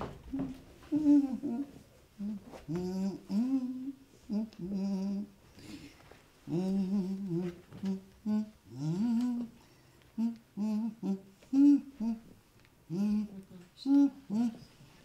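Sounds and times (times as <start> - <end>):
person humming a tune: 0.3 - 5.4, 6.5 - 9.6, 10.2 - 12.3, 12.9 - 14.8.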